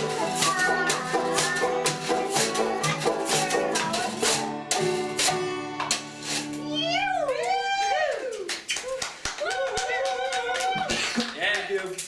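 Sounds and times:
strummed guitars: 0.0s - 7.5s.

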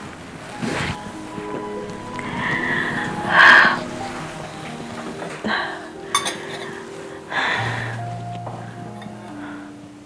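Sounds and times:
soft dramatic background music: 0.0s - 10.0s.

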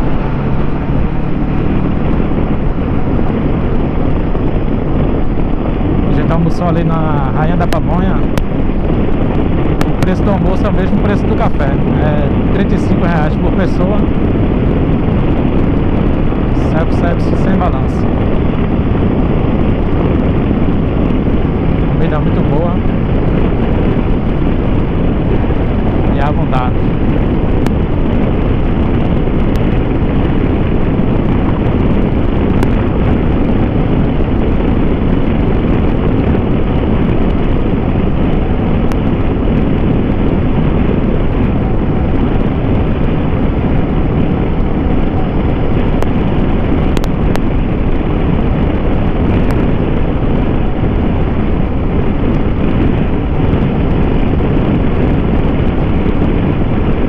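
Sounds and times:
motorcycle engine cruising: 0.0s - 57.0s
wind noise on microphone: 0.0s - 57.0s.

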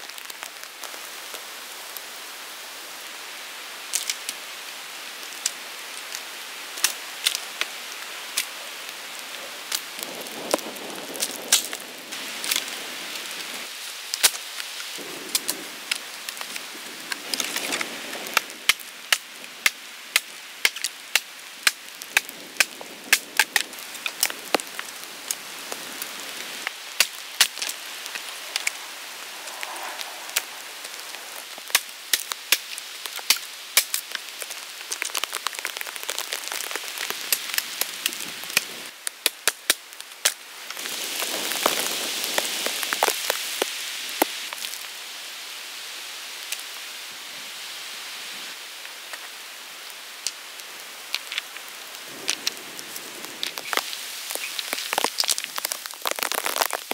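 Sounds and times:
rain hissing in a forest: 0.0s - 56.9s
raindrops ticking close by: 5.3s - 44.9s, 48.8s - 56.9s.

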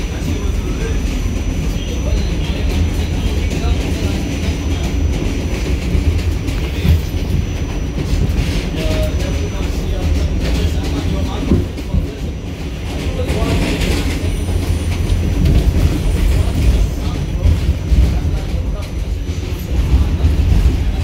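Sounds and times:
train wheels rumbling on track: 0.0s - 21.0s.

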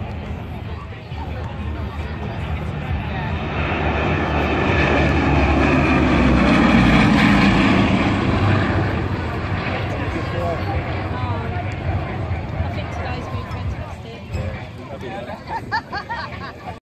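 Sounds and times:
aircraft engines droning: 0.0s - 16.8s.

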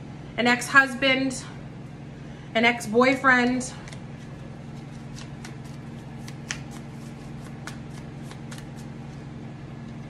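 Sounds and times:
cards being shuffled: 3.8s - 9.2s.

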